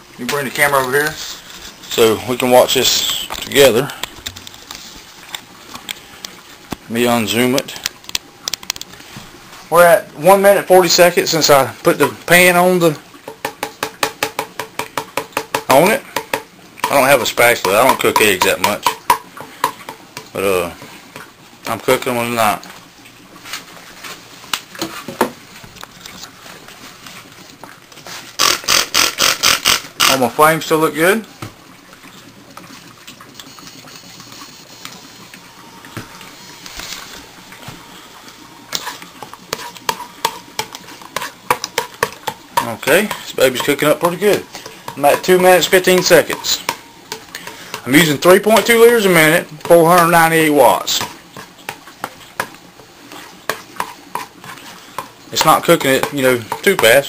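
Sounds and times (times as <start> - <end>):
faint steady hiss: 0.0 - 57.0
utensil scraping egg in frying pan: 38.7 - 50.3, 50.9 - 57.0.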